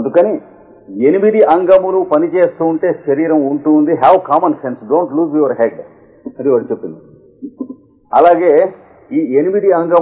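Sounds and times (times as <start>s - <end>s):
man talking: 0.0s - 7.2s, 8.1s - 10.0s.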